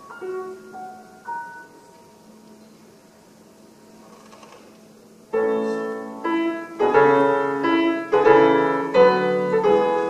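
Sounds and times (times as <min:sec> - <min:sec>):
soft piano chord ringing: 0:00.0 - 0:02.9, 0:05.3 - 0:10.0.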